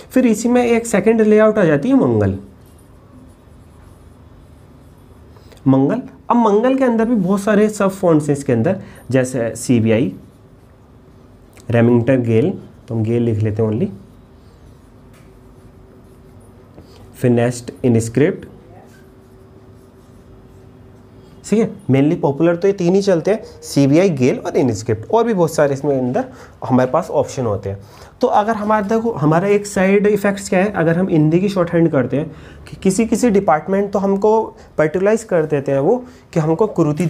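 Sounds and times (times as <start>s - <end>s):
marker writing on whiteboard: 0.0s - 12.8s, 13.6s - 23.6s
faint steady hum: 0.0s - 37.0s.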